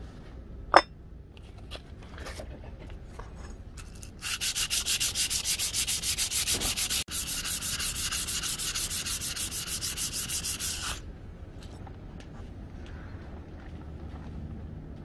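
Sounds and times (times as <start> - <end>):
abrasive pad scrubbing knife blade: 4.2 - 11.0.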